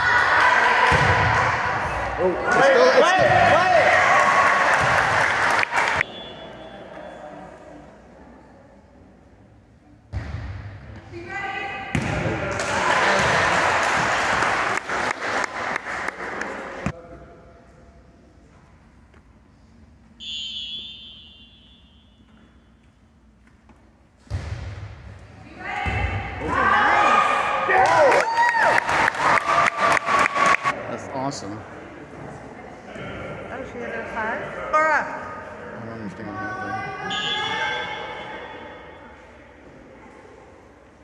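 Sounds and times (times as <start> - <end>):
referee's whistle blast: 6.0 - 7.2, 20.2 - 22.3, 37.1 - 38.8.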